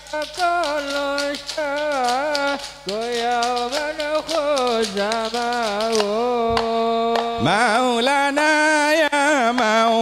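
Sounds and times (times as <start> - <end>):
frame drums rattling beat: 0.0 - 8.2
man singing devotional song: 0.0 - 10.0.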